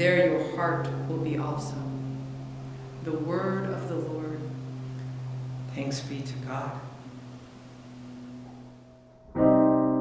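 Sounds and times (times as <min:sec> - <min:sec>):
faint hiss: 0:00.0 - 0:09.0
low steady hum: 0:00.0 - 0:09.8.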